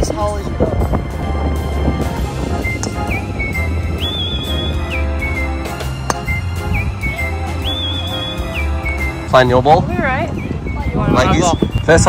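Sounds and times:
background music: 0.0 - 12.0
golf club striking ball: 5.7 - 6.4.

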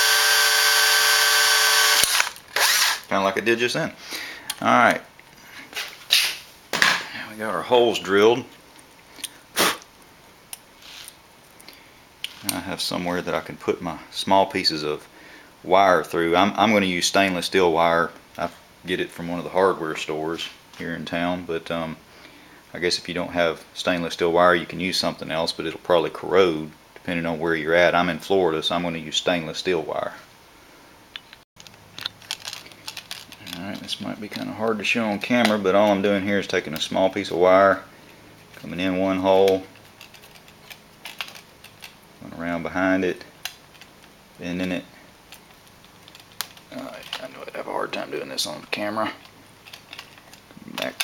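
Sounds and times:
sharp burst of breath: 4.0 - 4.5, 9.2 - 9.8, 15.1 - 15.6.

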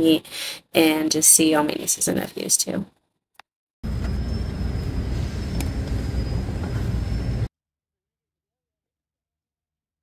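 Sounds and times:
thin high whine: 3.8 - 7.5
train low rumble: 3.9 - 7.5.

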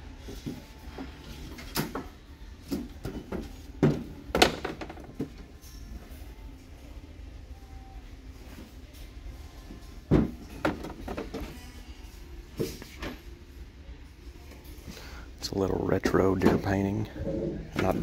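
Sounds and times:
wooden boards knocking together: 3.8 - 5.1.

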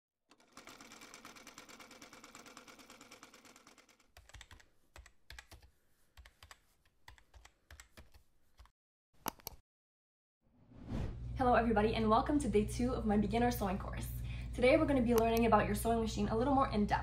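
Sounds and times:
keyboard key clicks: 9.2 - 9.6.

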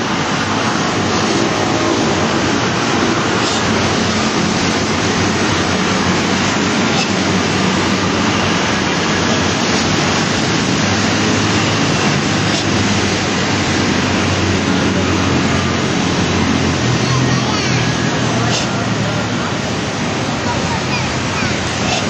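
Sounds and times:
loud rushing noise: 0.0 - 22.0.

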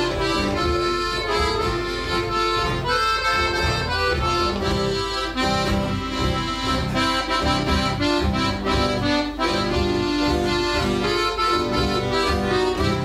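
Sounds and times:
fingerpicked acoustic guitar: 0.0 - 13.0
piano accordion melody: 0.0 - 13.0.

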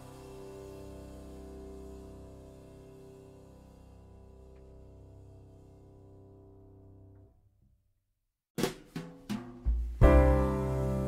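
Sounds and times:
drum kit hits: 8.6 - 11.0
deep bass note: 9.8 - 11.0.

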